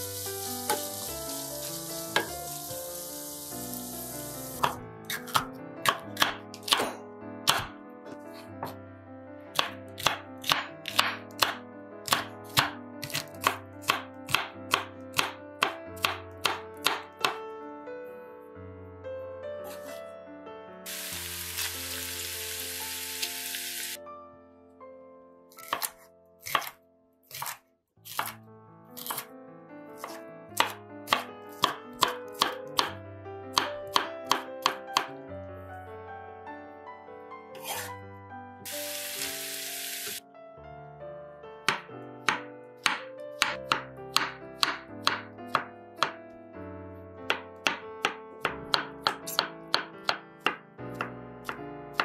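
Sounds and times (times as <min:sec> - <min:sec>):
knife chopping on wooden board: 0:02.2 - 0:02.4, 0:04.6 - 0:07.8, 0:08.6 - 0:08.8, 0:09.6 - 0:17.4, 0:19.6 - 0:20.0, 0:25.6 - 0:28.4, 0:29.0 - 0:29.3, 0:30.0 - 0:33.0, 0:33.6 - 0:35.1, 0:37.6 - 0:37.9, 0:41.7 - 0:45.7, 0:47.3 - 0:51.1.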